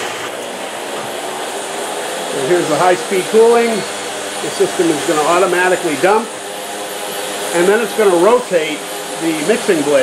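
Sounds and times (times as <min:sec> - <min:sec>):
caramel corn machine cooling tray running: 0:00.0 - 0:10.0.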